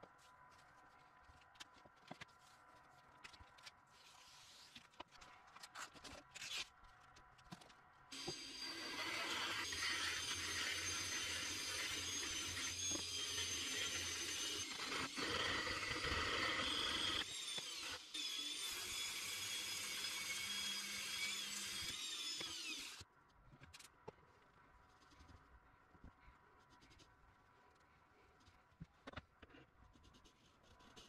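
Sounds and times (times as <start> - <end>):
sandpaper scraping a shaft: 3.9 - 4.9, 8.2 - 15.2.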